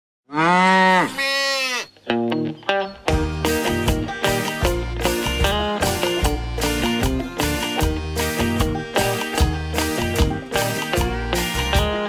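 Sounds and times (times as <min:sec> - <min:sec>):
cow mooing: 0:00.3 - 0:01.9.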